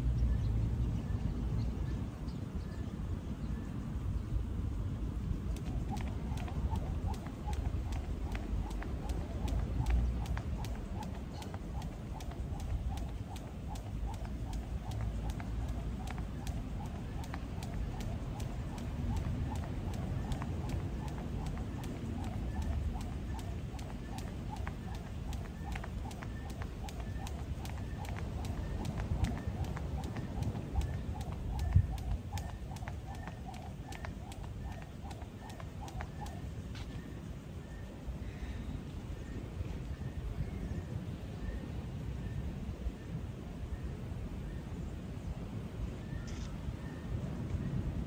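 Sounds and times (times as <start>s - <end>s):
wind on microphone: 3.7s - 36.4s
skipping rope slapping paving: 5.5s - 36.5s
light foot landings: 5.6s - 37.0s.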